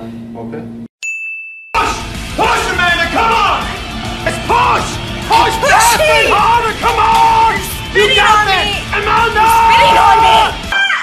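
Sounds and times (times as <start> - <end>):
bright ding: 1.0 - 1.8
music: 1.8 - 11.0.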